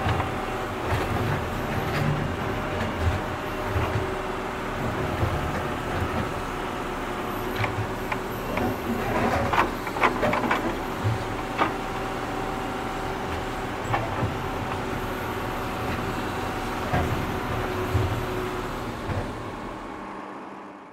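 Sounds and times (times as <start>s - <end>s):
knocks and clanks of digging gear: 7.5s - 12.0s.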